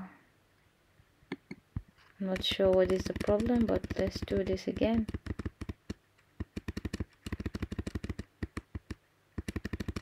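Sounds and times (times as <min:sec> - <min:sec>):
computer keyboard keys clicking: 0:02.4 - 0:10.0.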